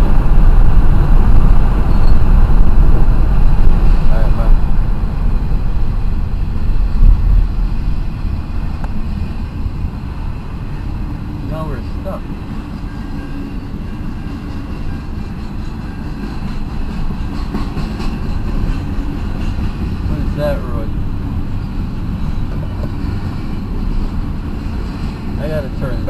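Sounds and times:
freight train rumbling past: 0.0 - 26.0.

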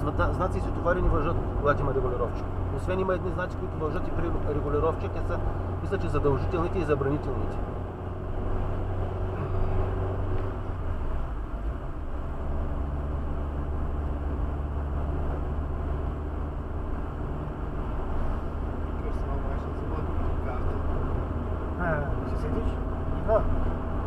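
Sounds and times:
low engine hum: 0.0 - 24.0
tyre and road noise: 0.0 - 24.0.

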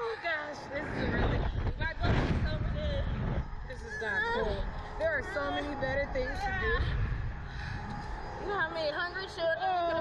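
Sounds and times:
wind rushing over microphone: 0.2 - 9.8.

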